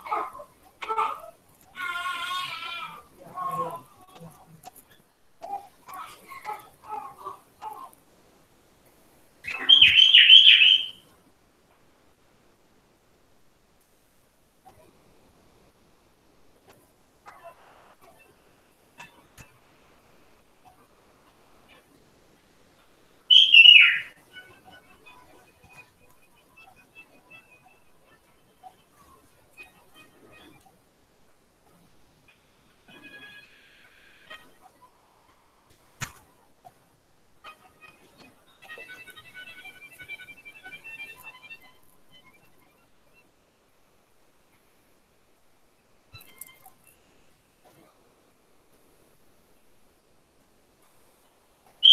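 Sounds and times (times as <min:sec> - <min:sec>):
faint high chirps: 0:09.4 - 0:11.1, 0:23.3 - 0:30.9, 0:31.7 - 0:35.4, 0:37.4 - 0:43.4, 0:45.8 - 0:47.8
falling whistle-like call: 0:09.5 - 0:11.0, 0:23.3 - 0:25.2.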